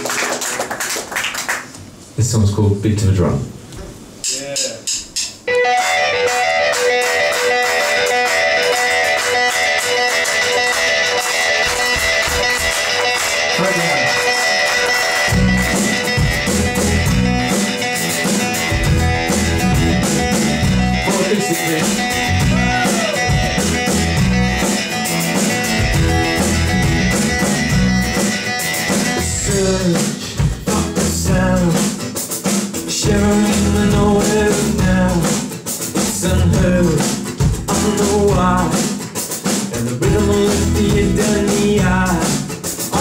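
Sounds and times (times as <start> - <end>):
steady drum beat: 3.8 - 5.5, 7.0 - 43.0
strummed acoustic guitar: 5.5 - 43.0.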